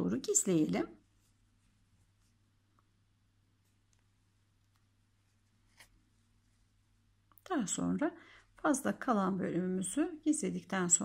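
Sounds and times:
hands rustling yarn: 0:00.4 - 0:07.4.

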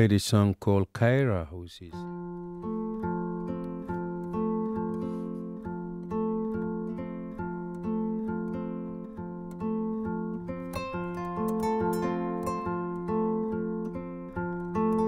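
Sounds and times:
plucked harp-lute: 0:02.0 - 0:15.0.

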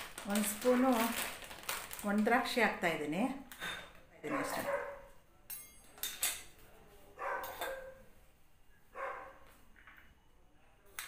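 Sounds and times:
dog barking: 0:04.3 - 0:05.1, 0:07.2 - 0:08.0, 0:08.9 - 0:09.4.

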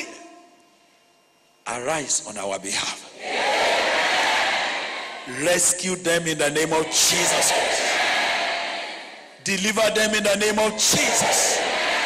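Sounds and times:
congregation crying out in prayer: 0:02.3 - 0:12.0.

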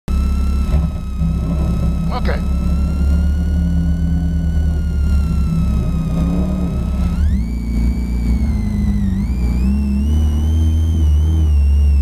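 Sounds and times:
thin high whine: 0:00.1 - 0:12.0
car engine idling: 0:00.2 - 0:12.0.

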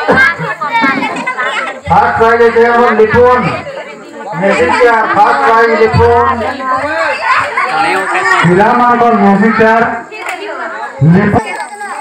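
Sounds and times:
crowd chatter: 0:00.0 - 0:12.0
man making announcement: 0:01.9 - 0:03.7, 0:04.3 - 0:07.1, 0:07.8 - 0:10.0.

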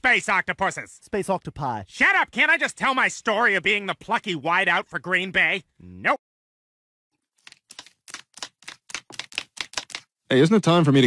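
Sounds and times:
dog claws clicking on hard floor: 0:07.5 - 0:10.1.

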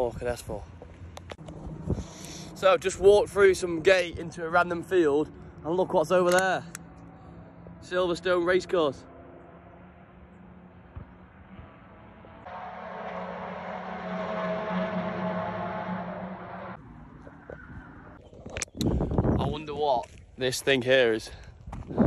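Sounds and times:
distant racing car engines: 0:00.0 - 0:18.8.

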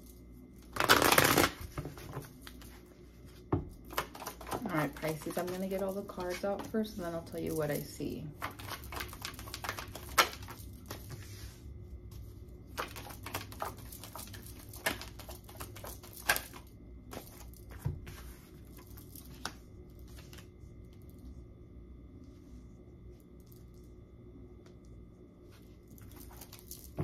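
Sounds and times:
cards being shuffled: 0:00.6 - 0:02.8, 0:03.8 - 0:06.8, 0:08.4 - 0:11.4, 0:12.7 - 0:20.5.

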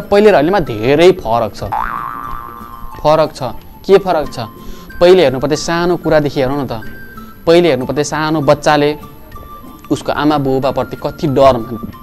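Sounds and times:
cartoon boing sound effect: 0:01.7 - 0:02.8
man talking: 0:03.0 - 0:06.9, 0:09.9 - 0:12.0.

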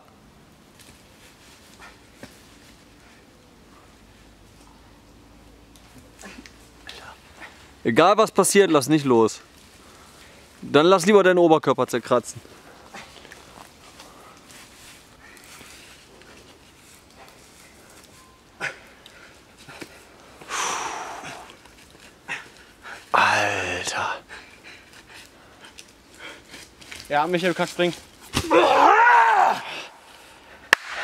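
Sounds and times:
man breathing hard: 0:18.6 - 0:21.6
man groaning with effort: 0:23.1 - 0:24.2.

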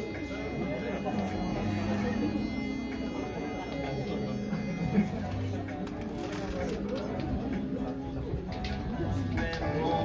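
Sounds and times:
room murmur: 0:00.0 - 0:10.0
voices humming a steady note: 0:00.0 - 0:10.0.

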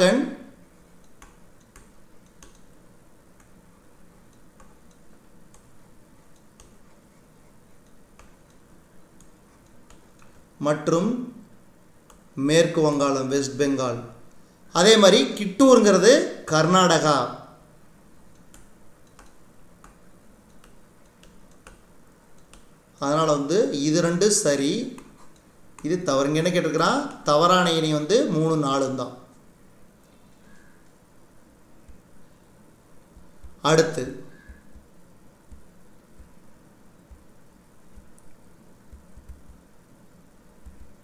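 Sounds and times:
stylus tapping on tablet: 0:01.0 - 0:03.6, 0:04.3 - 0:07.1, 0:07.8 - 0:10.5, 0:18.3 - 0:22.8, 0:33.0 - 0:39.7, 0:40.6 - 0:41.0.

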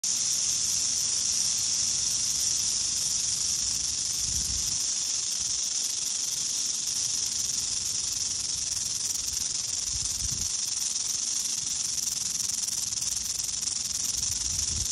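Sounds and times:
rattlesnake tail rattling: 0:00.0 - 0:14.9.

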